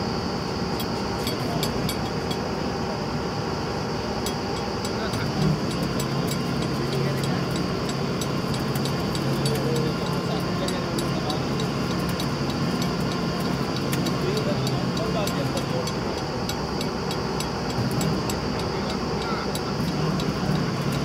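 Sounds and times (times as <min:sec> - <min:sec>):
drilling rig engine humming: 0:00.0 - 0:21.0.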